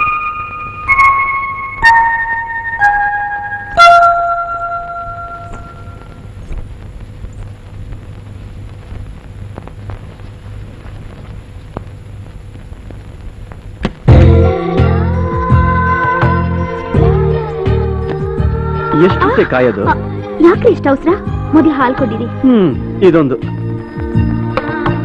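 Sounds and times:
bell-like struck notes: 0.0 - 6.2
low steady drone: 0.0 - 11.2.

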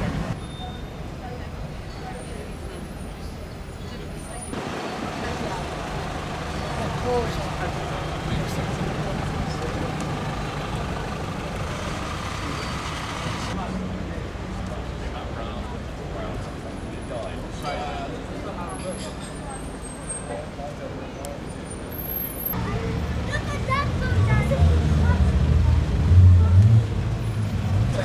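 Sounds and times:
people talking: 0.0 - 12.6, 22.6 - 26.8
traffic engine hum: 0.0 - 17.6, 19.2 - 28.0.

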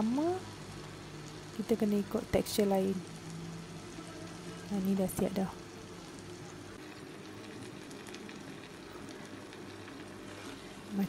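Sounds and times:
curry sizzling in a wok: 0.0 - 11.0.

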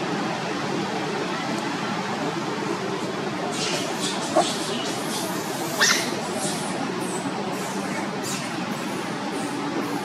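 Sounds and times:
outdoor background noise: 0.0 - 10.0
baby monkey squeak: 5.7 - 6.6.

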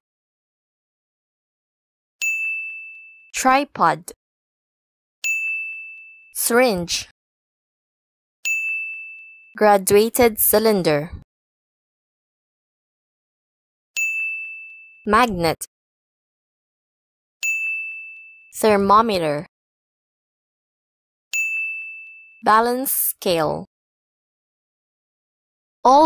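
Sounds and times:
bright ding chime: 2.2 - 3.3, 5.2 - 6.3, 8.5 - 9.6, 14.0 - 15.0, 17.4 - 18.4, 21.4 - 22.4.

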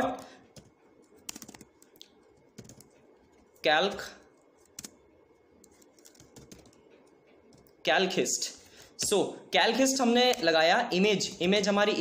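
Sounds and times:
computer keyboard typing: 0.0 - 5.0, 5.6 - 7.8.

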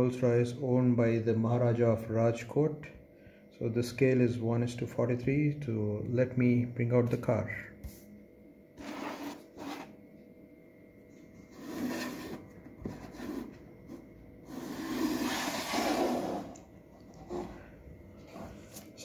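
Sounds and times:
scraping of plastic case: 11.5 - 13.6, 14.5 - 16.5.

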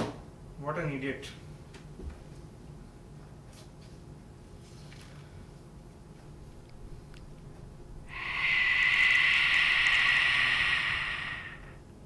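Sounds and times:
harsh hissing screech: 6.7 - 11.8.

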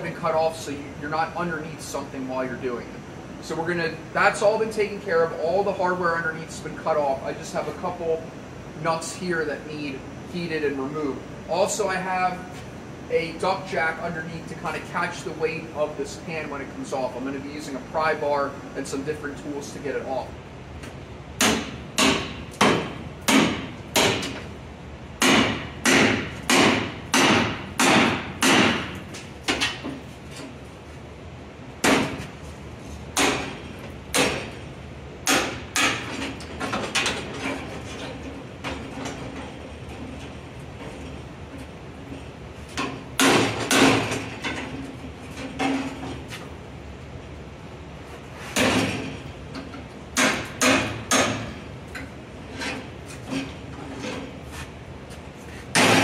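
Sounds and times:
hammer striking metal: 21.4 - 24.4, 25.2 - 29.0, 50.2 - 51.5, 55.8 - 56.0.

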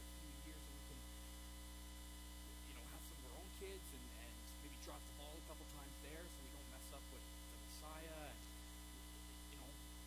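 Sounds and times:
faint man speaking: 0.0 - 1.2, 2.4 - 8.6, 9.4 - 9.9
electrical mains hum: 0.0 - 10.0.

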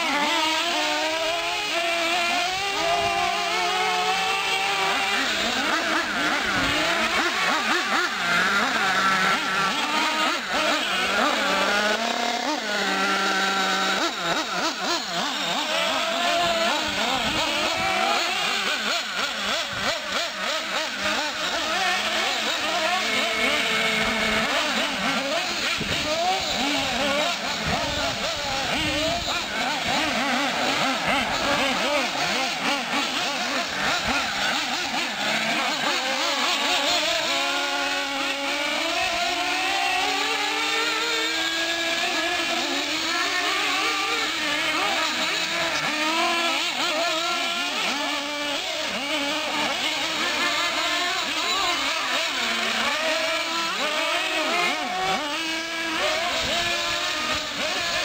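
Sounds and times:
rc truck engines whining: 0.0 - 58.0.

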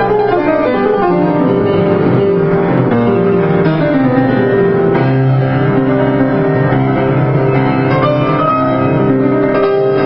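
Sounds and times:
grand piano playing: 0.0 - 10.0.

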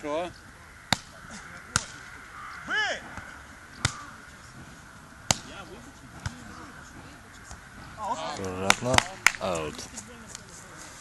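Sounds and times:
faint voices: 0.0 - 11.0
volleyball hit by hand: 0.9 - 2.0, 3.1 - 4.0, 5.2 - 5.5, 8.6 - 9.4.

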